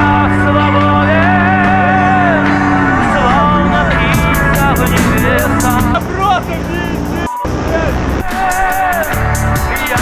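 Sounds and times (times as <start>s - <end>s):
paramotor engine running: 0.0s - 8.2s
rap music with beat: 3.0s - 10.0s.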